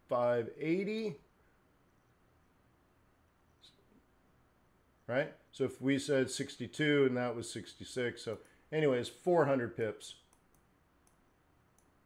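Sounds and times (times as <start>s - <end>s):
computer mouse clicks: 10.3s - 12.0s.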